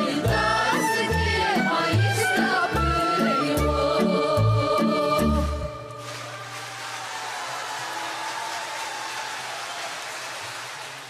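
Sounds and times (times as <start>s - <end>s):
audience applauding: 6.0s - 11.0s.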